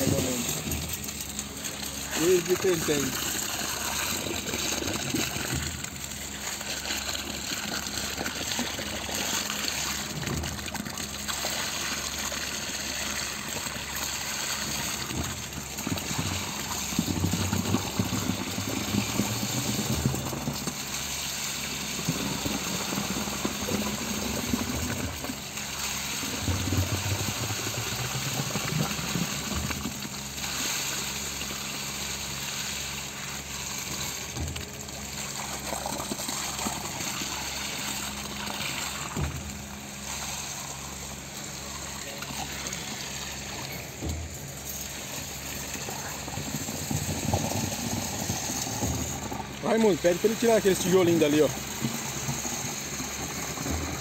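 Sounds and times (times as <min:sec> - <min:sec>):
pump engine running: 0:00.0 - 0:54.0
wet concrete gushing from hose: 0:00.0 - 0:54.0.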